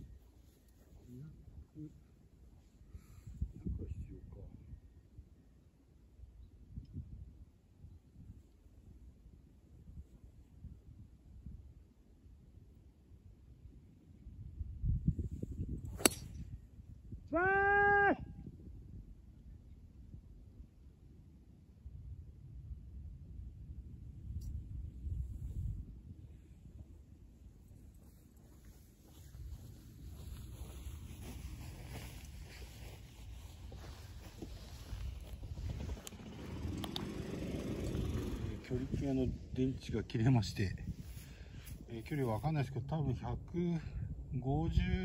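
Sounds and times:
wind buffeting microphone: 14.3s - 17.3s, 24.0s - 26.9s, 28.0s - 42.3s
golf club striking ball: 15.9s - 16.4s.

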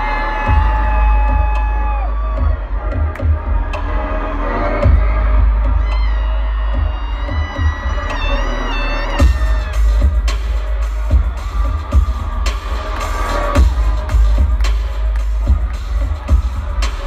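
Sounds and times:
crowd cheering: 0.0s - 17.0s
electronic music with deep bass: 0.0s - 17.0s.

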